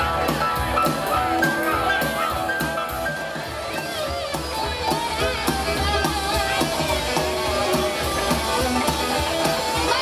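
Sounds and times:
drum kit: 0.0 - 10.0
electric guitar: 0.0 - 10.0
upright double bass: 0.0 - 10.0.

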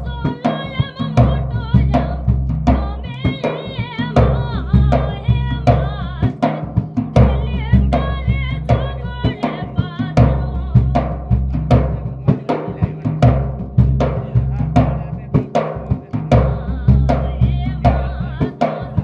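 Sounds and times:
dhol drum beating: 0.0 - 19.0.

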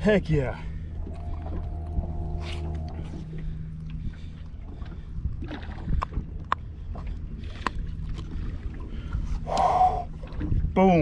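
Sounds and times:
wind and water rumble: 0.0 - 11.0.

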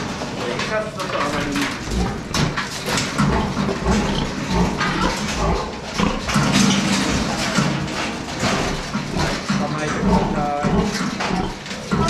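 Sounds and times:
pig grunting: 1.4 - 7.8, 8.4 - 12.0.

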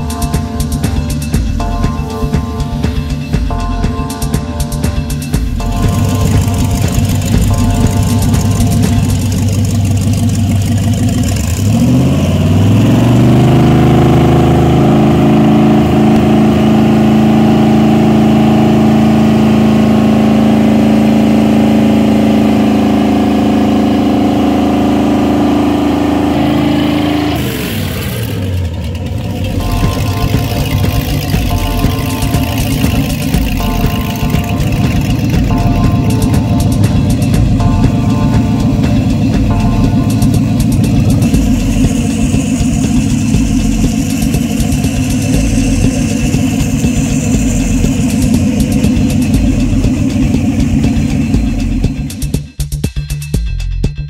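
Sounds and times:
marine engine idling and revving: 0.0 - 54.0.

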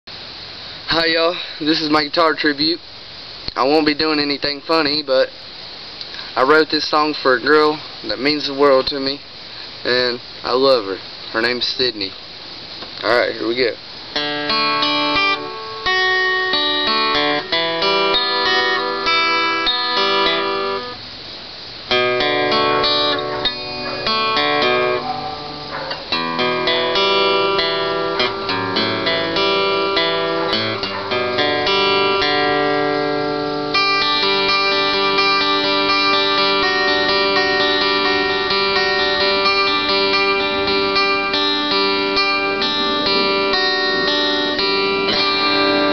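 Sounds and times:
acoustic guitar strumming chords: 14.1 - 21.1, 21.8 - 45.9.

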